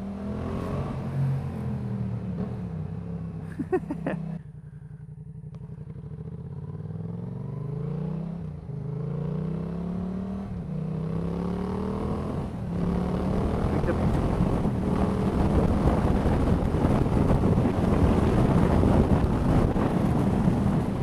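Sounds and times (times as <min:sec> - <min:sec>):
motorcycle engine accelerating: 0:00.0 - 0:21.0
wind noise: 0:12.7 - 0:21.0.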